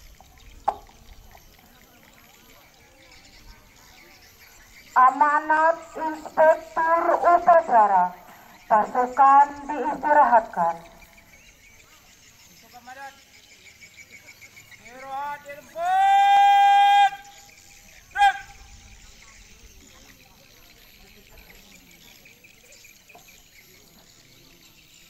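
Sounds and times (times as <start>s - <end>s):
faint insect chirring: 0.0s - 15.8s, 17.1s - 25.0s.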